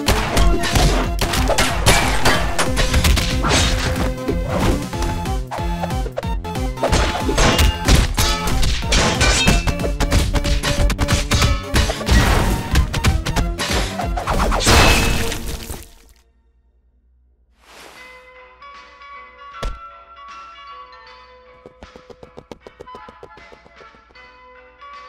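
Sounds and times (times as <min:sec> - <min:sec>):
background music: 0:00.0 - 0:16.9, 0:17.9 - 0:25.0
crashing shattering impact: 0:00.1 - 0:04.0, 0:14.6 - 0:16.1
cartoon hits and swishes: 0:06.8 - 0:15.5.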